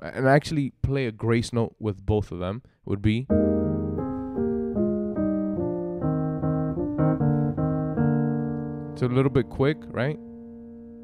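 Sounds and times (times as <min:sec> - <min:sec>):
piano descending chords: 0:03.3 - 0:11.0.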